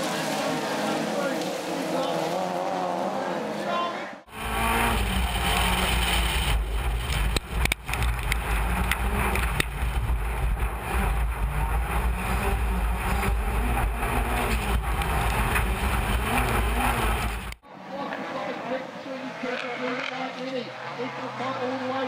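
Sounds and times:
racing cars passing: 0.0s - 22.0s
in-car engine rumble: 4.2s - 17.6s.

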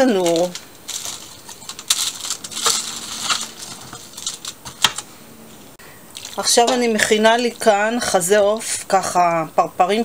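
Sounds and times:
metal spoon scraping foil tray: 0.0s - 5.0s.

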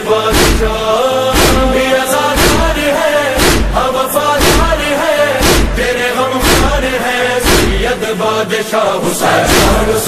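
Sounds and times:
person chanting a lament: 0.0s - 10.0s
heavy beat: 0.3s - 8.0s, 9.5s - 9.9s.

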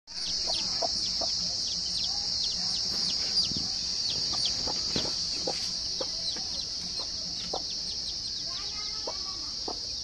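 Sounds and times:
chicks peeping: 0.1s - 10.0s
steady high-pitched hiss: 0.1s - 10.0s
hen clucking: 0.2s - 10.0s.

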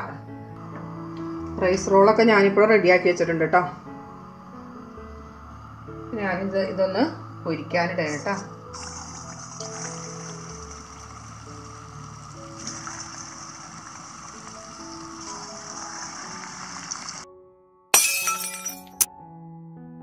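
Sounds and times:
background music: 0.0s - 20.0s
food sizzling in oil: 8.2s - 17.2s.

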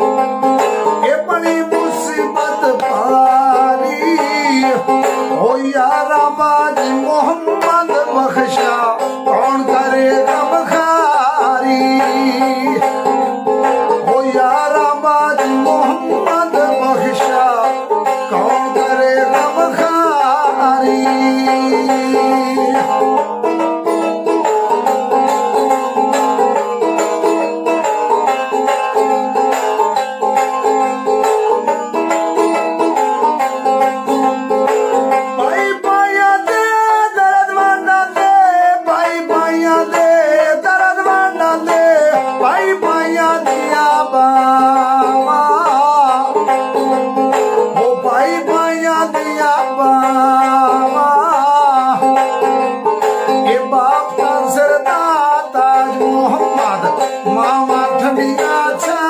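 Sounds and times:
man singing: 0.0s - 59.0s
plucked one-string instrument: 0.0s - 59.0s.

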